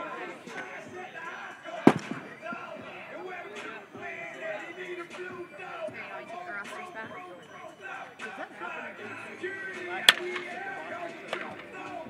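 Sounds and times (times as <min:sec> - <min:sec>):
people talking: 0:00.0 - 0:12.0
bat hitting ball crack: 0:10.1 - 0:10.7.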